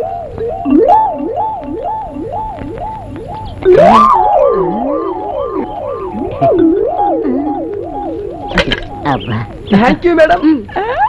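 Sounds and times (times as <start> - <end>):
siren warble: 0.0 - 9.8.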